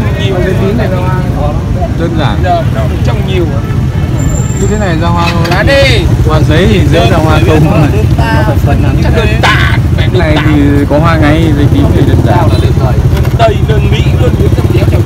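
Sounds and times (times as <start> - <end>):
people talking: 0.0 - 15.0
road traffic rumble: 0.0 - 15.0.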